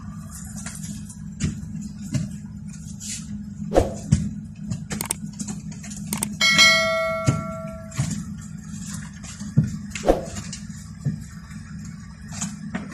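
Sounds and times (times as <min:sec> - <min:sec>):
bell-like chime: 0:06.4 - 0:08.1
sharp knocks: 0:06.6 - 0:08.1.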